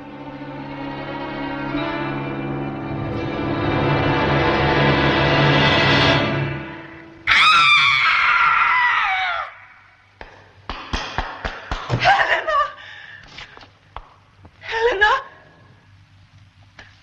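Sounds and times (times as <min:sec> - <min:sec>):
orchestral chord: 0:00.0 - 0:07.2
woman screaming: 0:07.3 - 0:09.9.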